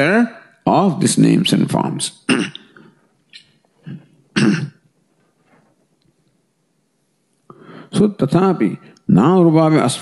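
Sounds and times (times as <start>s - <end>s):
man coughing: 2.3s - 3.0s, 3.8s - 4.8s.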